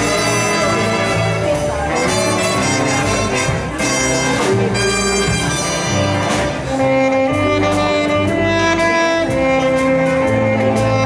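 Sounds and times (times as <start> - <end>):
swing big band playing: 0.0 - 11.0
tenor saxophone: 0.0 - 11.0.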